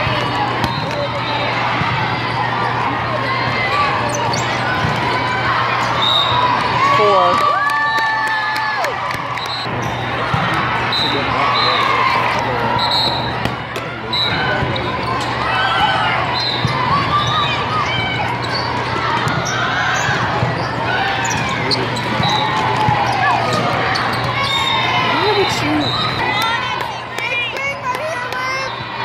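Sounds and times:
many overlapping voices: 0:00.0 - 0:07.4, 0:09.0 - 0:29.0
volleyballs thudding: 0:13.3 - 0:13.9.

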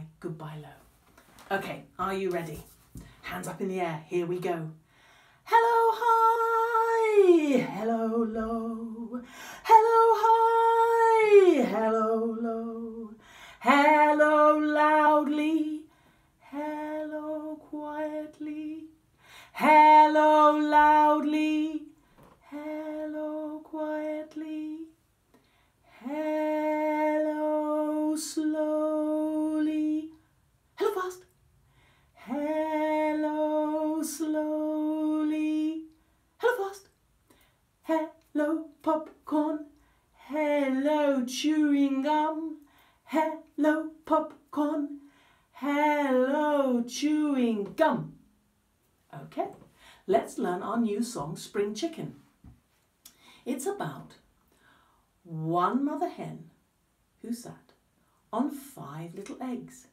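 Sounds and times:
woman singing unaccompanied: 0:01.4 - 0:04.8, 0:05.4 - 0:25.0, 0:25.9 - 0:30.2, 0:30.8 - 0:31.4, 0:32.2 - 0:37.0, 0:37.8 - 0:48.2, 0:49.1 - 0:52.3, 0:55.2 - 0:56.5.

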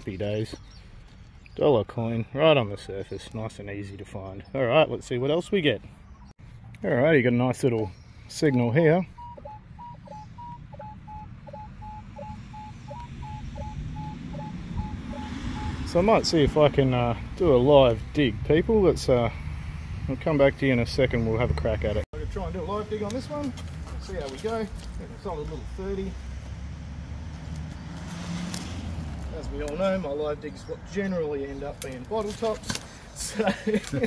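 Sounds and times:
metal detector beeping: 0:08.5 - 0:16.2.

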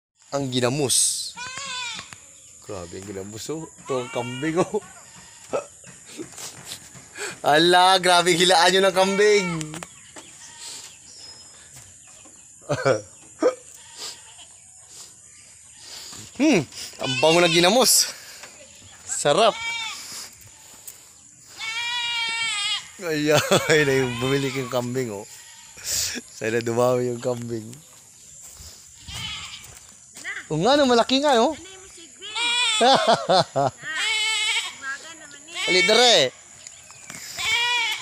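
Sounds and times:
distant bird calls: 0:00.2 - 0:38.0
goat bleating: 0:01.3 - 0:02.2, 0:03.8 - 0:05.7, 0:07.4 - 0:09.8, 0:13.6 - 0:14.6, 0:15.7 - 0:18.4, 0:19.4 - 0:20.2, 0:21.5 - 0:26.2, 0:29.0 - 0:29.8, 0:32.2 - 0:33.2, 0:33.8 - 0:36.2, 0:37.2 - 0:38.0.

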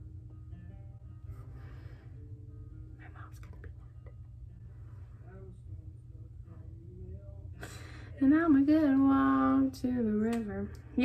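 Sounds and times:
faint background music: 0:00.0 - 0:11.0
low hum: 0:00.0 - 0:11.0
soft whispering: 0:02.9 - 0:05.8.

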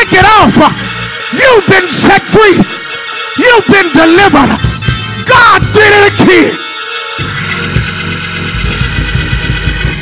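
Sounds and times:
organ chords: 0:00.0 - 0:10.0
fast low beat: 0:07.2 - 0:10.0.

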